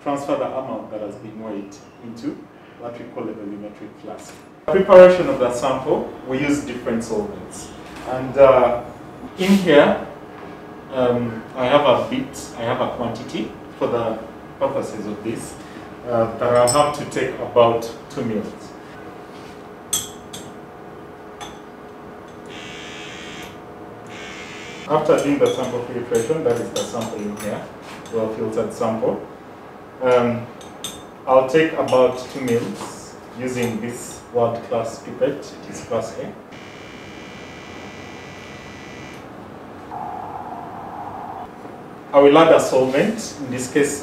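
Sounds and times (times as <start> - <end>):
high-pitched machine whine: 22.3 - 25.0, 36.5 - 39.3
pipette pump buzzing: 22.4 - 25.0, 36.5 - 39.3.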